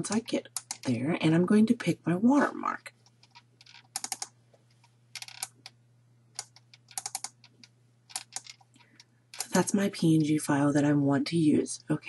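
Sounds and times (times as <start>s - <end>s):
faint low hum: 0.0s - 12.0s
computer mouse clicks: 0.1s - 0.9s, 3.0s - 5.8s, 6.4s - 9.6s.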